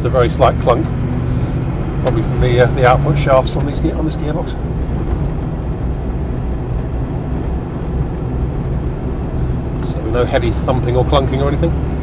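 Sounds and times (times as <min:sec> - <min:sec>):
low engine drone: 0:00.0 - 0:12.0
road and transmission noise: 0:00.0 - 0:12.0.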